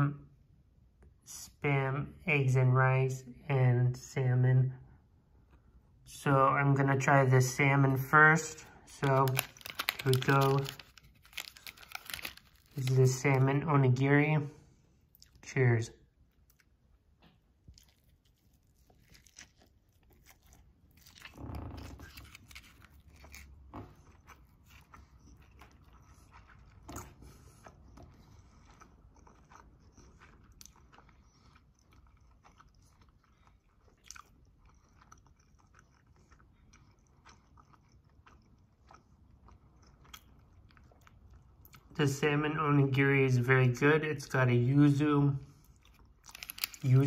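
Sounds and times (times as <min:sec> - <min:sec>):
close-up chewing: 0:08.5 - 0:13.3, 0:16.2 - 0:42.0, 0:45.5 - 0:47.0
small crunches: 0:08.6 - 0:13.3, 0:17.6 - 0:36.3, 0:45.8 - 0:47.0.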